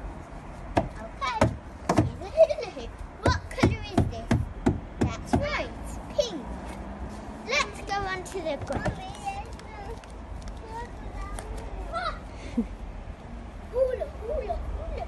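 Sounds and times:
girl chattering and exclaiming: 7.4s - 12.6s, 13.7s - 15.0s.

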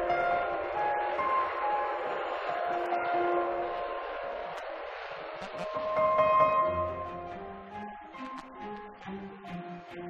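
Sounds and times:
jet engine rushing and whining: 0.0s - 8.7s.

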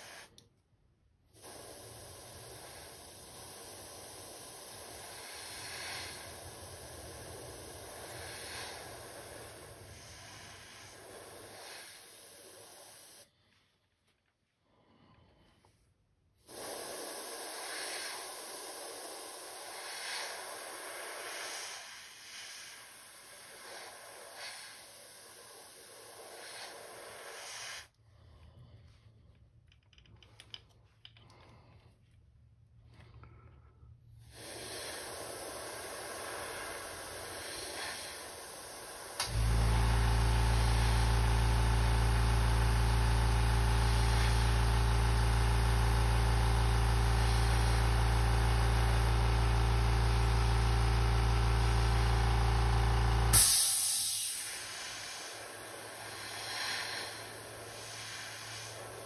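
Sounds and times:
airbrush air hissing: 0.0s - 0.4s, 1.3s - 13.3s, 16.4s - 27.9s, 34.3s - 59.0s
sharp hiss of released air: 0.0s - 0.5s, 1.2s - 13.3s, 16.4s - 27.9s, 34.2s - 59.0s
air compressor motor humming: 1.3s - 13.3s, 16.4s - 27.9s, 34.3s - 59.0s.

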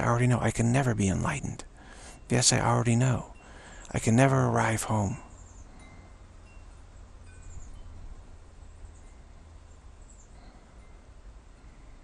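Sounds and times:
faint chiming tones: 0.0s - 12.0s
low steady hum: 0.0s - 12.0s.

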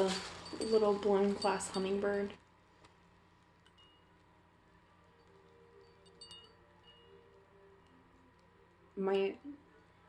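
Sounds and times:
faint high chime-like pings: 3.8s - 4.2s, 5.2s - 8.0s.

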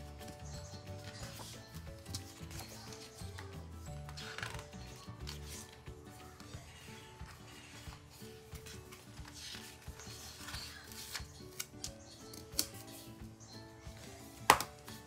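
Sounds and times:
soft background music: 0.0s - 15.0s
paper rustling: 0.1s - 13.2s.

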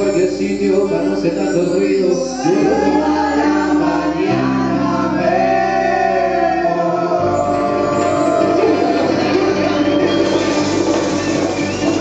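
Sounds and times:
voices singing: 0.0s - 10.4s
live band playing: 6.7s - 12.0s.

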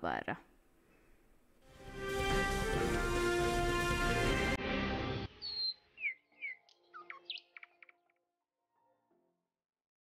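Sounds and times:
music sting: 1.7s - 5.9s
short bird chirps: 5.4s - 8.0s.

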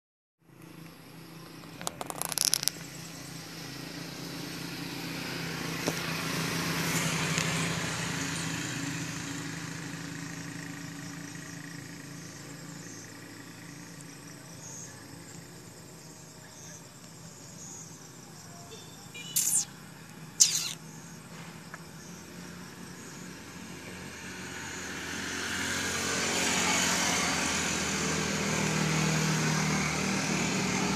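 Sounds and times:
motor vehicle passing by: 0.8s - 18.2s, 19.4s - 30.9s.

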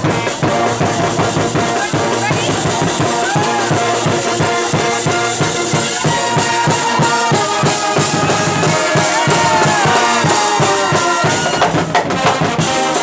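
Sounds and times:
brass band playing: 0.0s - 13.0s
steady drum beat: 0.0s - 13.0s.

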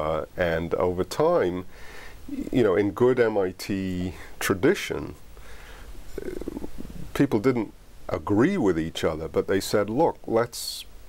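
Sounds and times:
man breathing: 1.7s - 2.3s, 5.3s - 7.0s
man's creaky vocal fry: 2.3s - 2.6s, 6.1s - 7.2s.

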